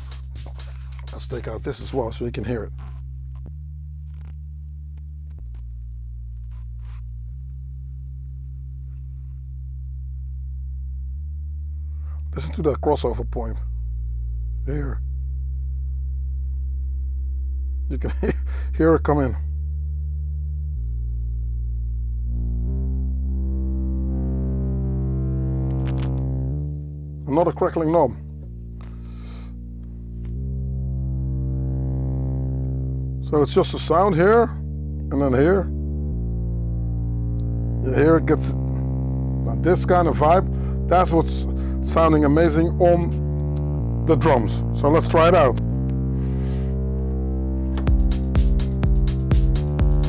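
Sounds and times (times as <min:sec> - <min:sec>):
scratchy knob crackles: 0:00.0 - 0:10.4, 0:24.6 - 0:26.8, 0:43.1 - 0:46.1
distorted synthesizer bass line: 0:00.0 - 0:50.0.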